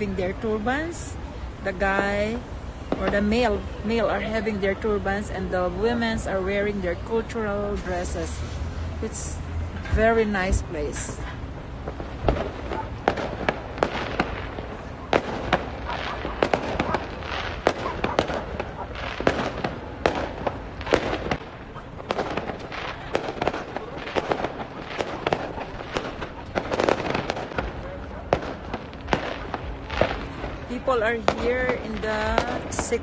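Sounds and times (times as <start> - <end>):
firecrackers banging: 0.0 - 33.0.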